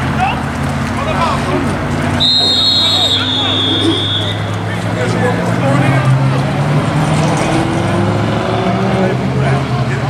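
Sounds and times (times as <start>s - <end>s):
road traffic hum: 0.0s - 10.0s
spectators chattering: 0.0s - 10.0s.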